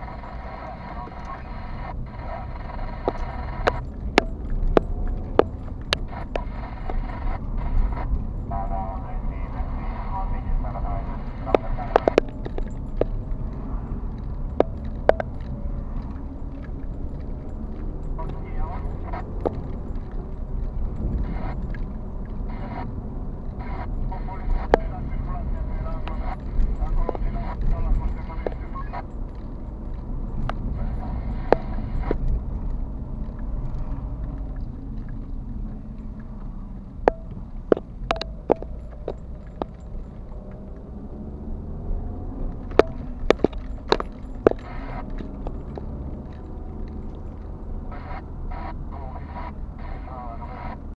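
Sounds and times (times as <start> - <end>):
sharp clicks: 0.0 - 8.4, 10.5 - 41.2
car engine and tyres rumble: 0.0 - 50.9
turn signal ticks: 0.0 - 50.9
muffled voice: 0.1 - 3.8, 6.1 - 12.2, 18.2 - 19.3, 23.6 - 29.1, 47.9 - 50.9.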